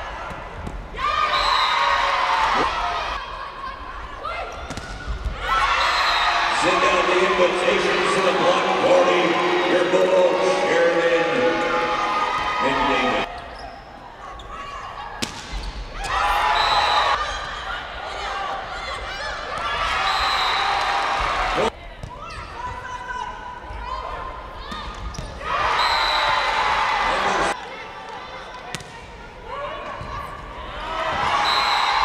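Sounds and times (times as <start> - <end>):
players shouting and cheering: 0.0 - 13.3, 15.9 - 32.0
arena crowd noise: 0.0 - 32.0.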